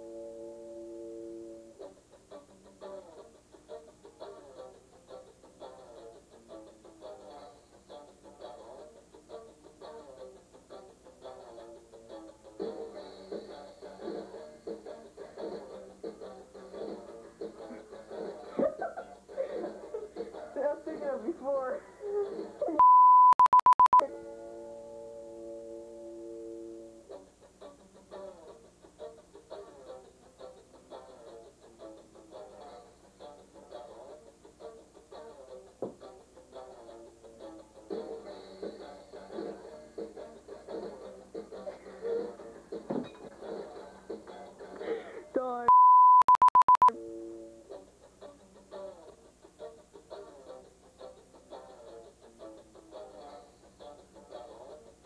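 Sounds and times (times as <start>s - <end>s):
music with picked notes: 0.0s - 22.7s, 24.0s - 45.2s, 46.9s - 55.0s
person laughing: 17.7s - 20.4s, 44.8s - 45.4s
electronic beeps: 22.8s - 24.0s, 45.7s - 46.9s
high test tone: 22.8s - 24.1s, 45.7s - 46.9s.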